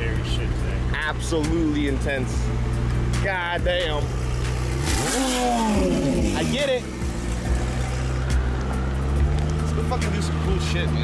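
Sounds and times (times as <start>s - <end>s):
car engine idling and revving: 0.0s - 11.0s.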